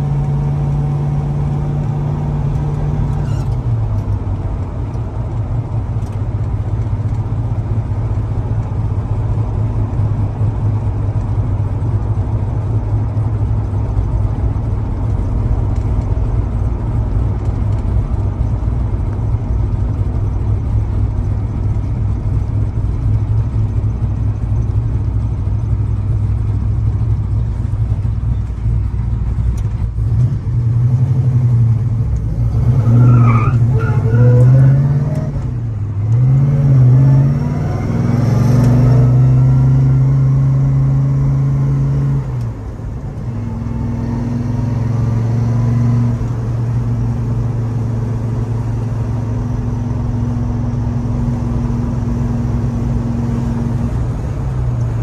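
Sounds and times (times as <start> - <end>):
car engine revving: 29.2 - 55.0.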